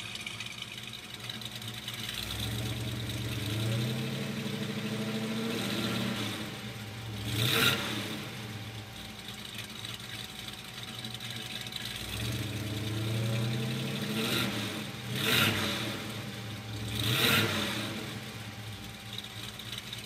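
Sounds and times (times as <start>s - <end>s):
car engine revving and idling: 0.0s - 20.0s.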